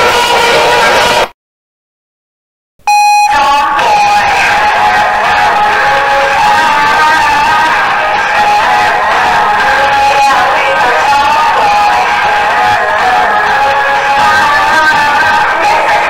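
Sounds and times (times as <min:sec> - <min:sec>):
pop song with held note: 0:00.0 - 0:01.3, 0:02.9 - 0:16.0.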